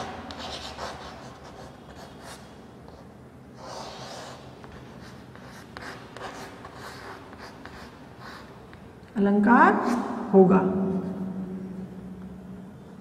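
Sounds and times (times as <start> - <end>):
chalk scratching on blackboard: 0.3 - 3.0, 3.6 - 8.6.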